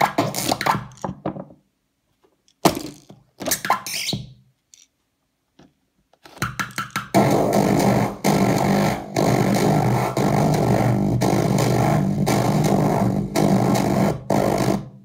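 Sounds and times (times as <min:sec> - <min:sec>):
harsh distorted electronic noise: 0:07.1 - 0:14.7.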